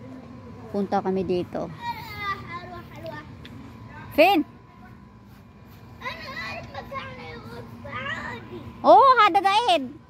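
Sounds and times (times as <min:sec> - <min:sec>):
faint steady hum: 0:00.0 - 0:10.0
child talking and babbling: 0:01.6 - 0:05.0, 0:05.9 - 0:09.9.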